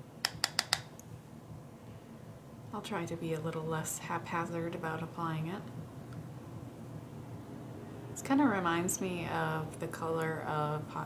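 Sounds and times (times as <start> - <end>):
brush tapping on palette: 0.2 - 0.9.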